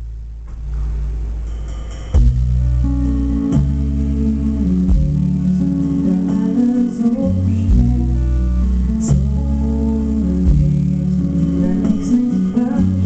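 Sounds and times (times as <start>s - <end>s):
deep sustained bass line: 0.0s - 13.0s
sharp drum hits: 0.5s - 2.8s.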